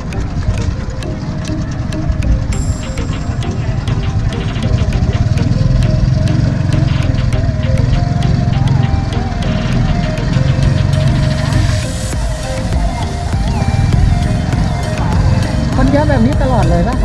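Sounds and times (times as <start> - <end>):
music with steady beat: 0.0 - 17.0
vehicle engine running: 0.0 - 17.0.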